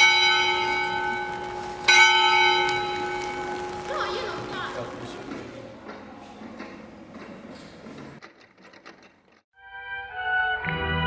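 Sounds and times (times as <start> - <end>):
church bell ringing: 0.0 - 4.5.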